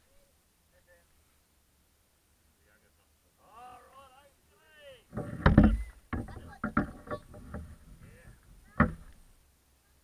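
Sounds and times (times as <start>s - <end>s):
knocks and thumps: 5.1s - 9.2s.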